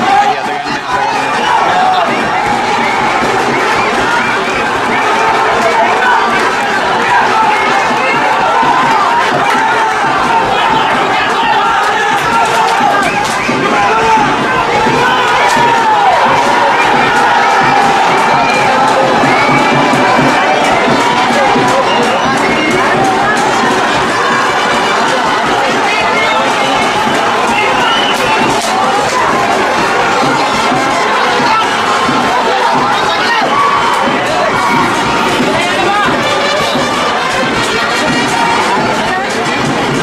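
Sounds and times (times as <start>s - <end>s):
crowd cheering and shouting: 0.0s - 40.0s.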